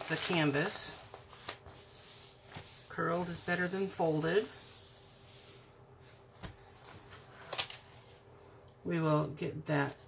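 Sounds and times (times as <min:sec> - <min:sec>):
hands rustling plastic film: 0:00.0 - 0:03.9.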